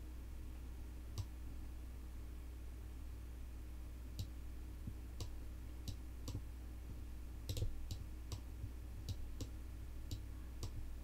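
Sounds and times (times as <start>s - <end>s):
low electrical hum: 0.0s - 11.0s
computer mouse clicking: 7.5s - 8.4s, 10.1s - 10.8s.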